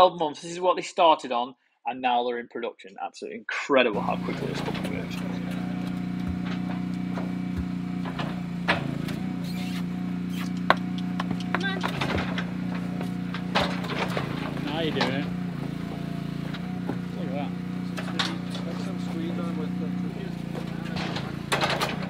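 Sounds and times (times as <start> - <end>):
hydraulic motor hum: 4.0 - 22.0.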